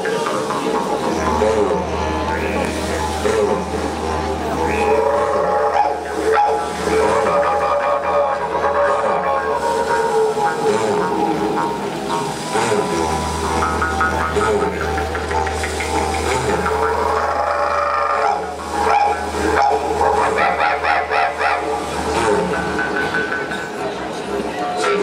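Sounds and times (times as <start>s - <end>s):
didgeridoos droning: 0.0s - 25.0s.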